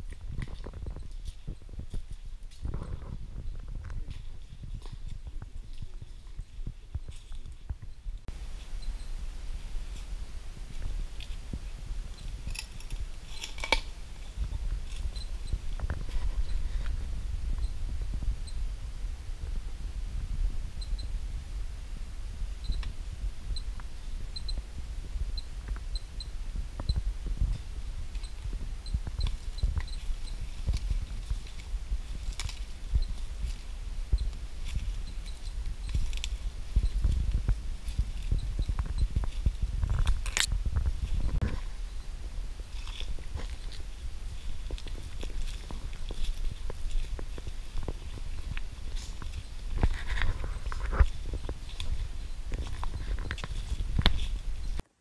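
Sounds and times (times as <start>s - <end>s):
low microphone rumble: 0.0s - 54.8s
footsteps crunching on leaves: 27.0s - 54.8s.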